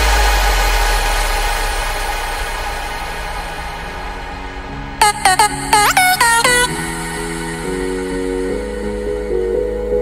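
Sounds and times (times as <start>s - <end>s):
noisy synth wash: 0.0s - 10.0s.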